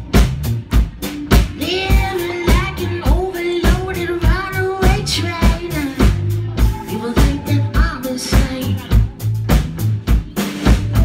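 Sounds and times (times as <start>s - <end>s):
drum kit kick and snare: 0.0s - 11.0s
electric bass held low notes: 0.0s - 11.0s.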